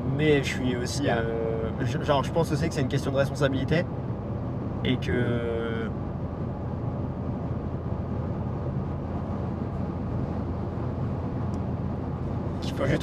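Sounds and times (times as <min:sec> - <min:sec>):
car road and engine noise: 0:00.0 - 0:13.0.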